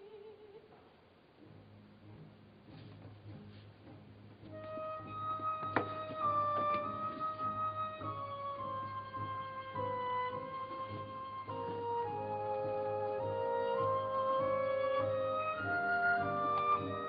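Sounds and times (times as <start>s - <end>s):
flute playing slow notes: 4.5s - 17.0s.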